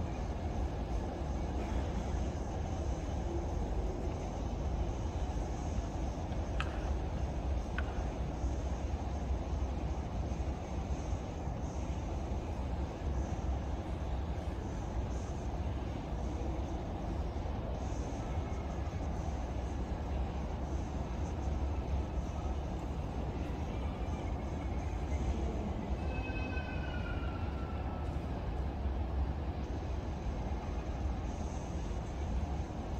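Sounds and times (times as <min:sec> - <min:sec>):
low outdoor background rumble: 0:00.0 - 0:32.9
faint high call: 0:25.3 - 0:28.2.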